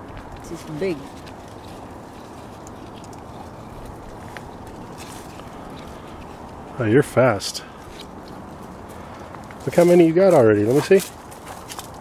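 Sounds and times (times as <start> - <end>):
leaves and branches handled: 0.0 - 12.0
outdoor background hiss: 0.0 - 12.0.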